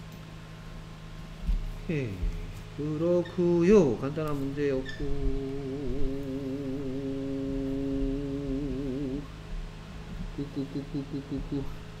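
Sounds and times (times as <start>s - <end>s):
man humming a held note: 1.9s - 9.4s, 10.2s - 12.0s.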